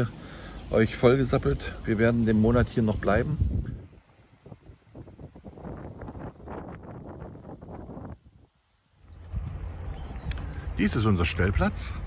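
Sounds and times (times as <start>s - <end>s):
low wind rumble: 0.0s - 12.0s
wind noise on microphone: 1.5s - 10.8s.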